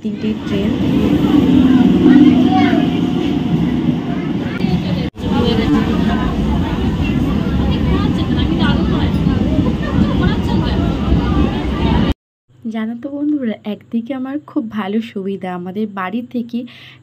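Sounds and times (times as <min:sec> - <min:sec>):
crowd of passengers chattering: 0:00.0 - 0:12.1
electric train rumbling: 0:00.0 - 0:12.2.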